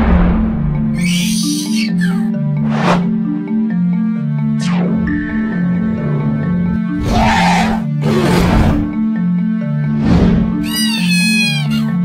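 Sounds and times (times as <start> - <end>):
cartoon dragon screeching roar: 7.0 - 8.5.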